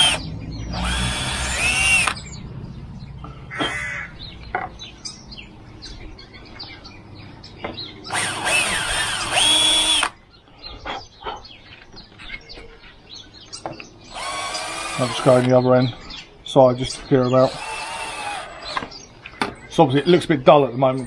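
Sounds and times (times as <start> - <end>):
cordless drill whining: 0.0 - 2.2, 8.1 - 10.1, 14.1 - 15.5, 17.4 - 18.9.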